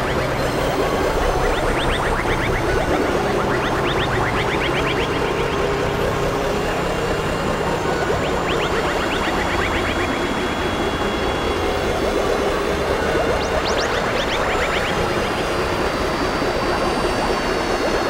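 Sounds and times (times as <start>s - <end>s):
steady electronic drone: 0.0s - 18.0s.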